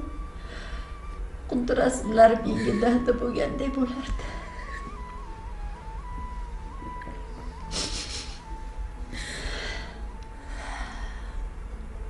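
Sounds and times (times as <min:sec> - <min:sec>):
steady high background tone: 0:00.0 - 0:12.0
woman crying and sniffling: 0:07.5 - 0:10.1.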